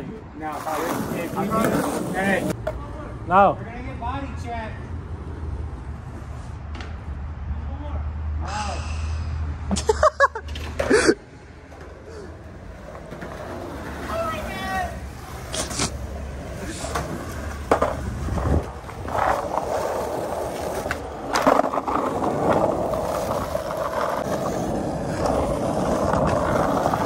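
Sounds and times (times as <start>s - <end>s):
skateboard wheels rolling: 0.0s - 3.2s, 5.0s - 7.2s, 10.3s - 27.0s
skateboard clacking on ground: 0.5s - 2.9s, 11.7s - 27.0s.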